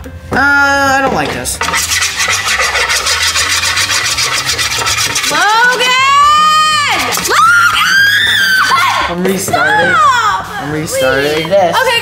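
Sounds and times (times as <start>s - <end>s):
scraping on a griddle: 1.6s - 7.5s.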